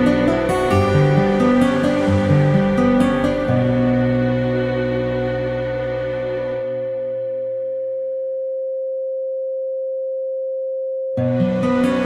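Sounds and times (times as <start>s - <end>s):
steady sine tone: 3.5s - 12.0s.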